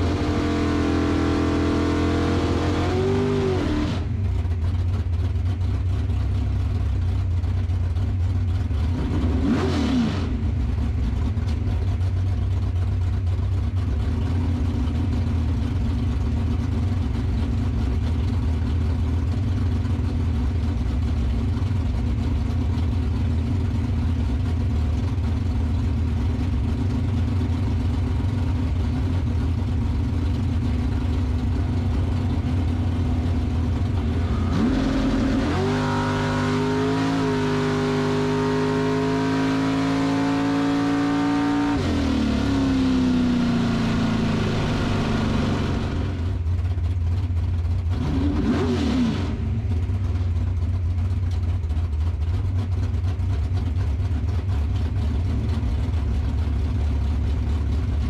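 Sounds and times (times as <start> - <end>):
engine revving: 0.0 - 4.2, 8.9 - 10.6, 33.0 - 46.4, 47.9 - 49.6
car engine idling: 3.3 - 9.4, 10.3 - 48.1, 49.3 - 58.0.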